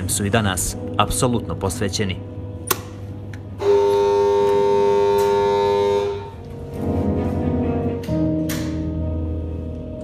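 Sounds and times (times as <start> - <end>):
steady alarm horn: 3.6 - 6.5.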